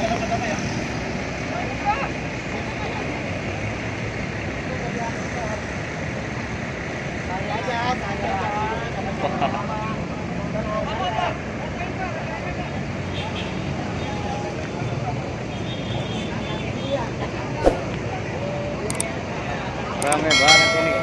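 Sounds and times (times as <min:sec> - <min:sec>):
idling bus engines rumble: 0:00.0 - 0:21.0
crowd talking: 0:13.9 - 0:21.0
sharp knock: 0:17.6 - 0:17.9.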